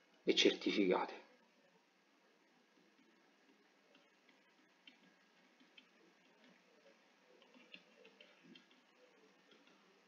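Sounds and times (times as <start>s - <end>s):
stylus tapping on pen tablet: 3.0s - 9.9s.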